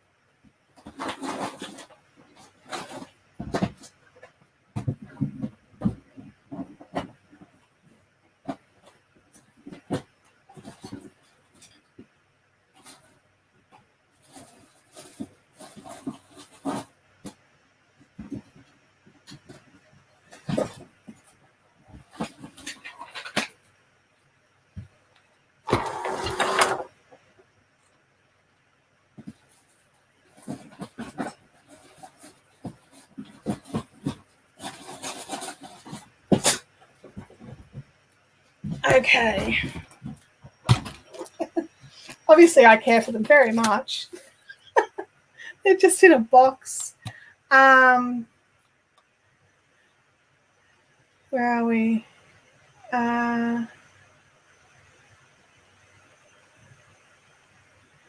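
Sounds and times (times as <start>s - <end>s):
basket rustling scrape: 25.7s - 27.0s, 29.4s - 36.6s.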